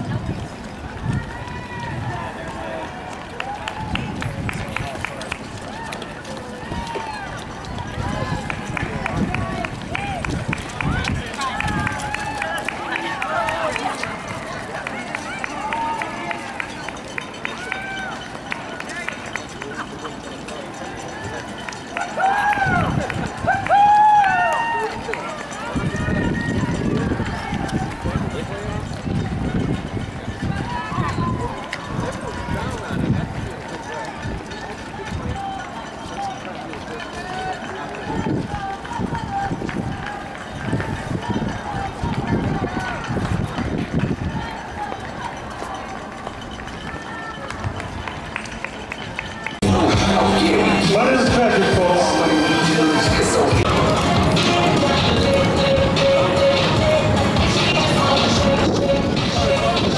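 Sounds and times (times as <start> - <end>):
spectators calling and cheering: 0.0 - 59.9
running shoes slapping on asphalt: 0.1 - 19.7.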